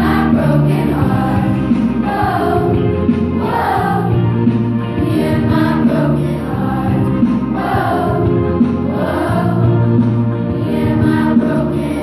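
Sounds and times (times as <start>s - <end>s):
girls' choir singing in unison: 0.0s - 12.0s.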